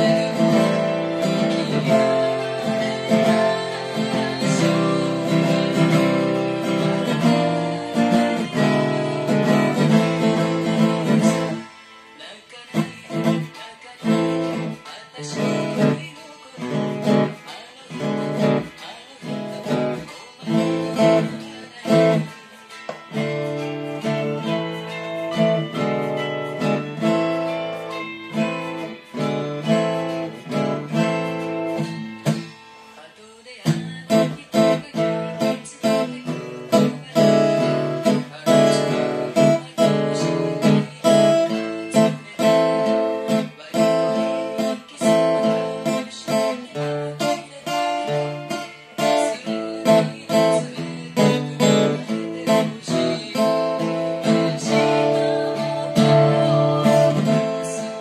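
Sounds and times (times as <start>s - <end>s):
fingerpicked acoustic guitar: 0.0s - 58.0s.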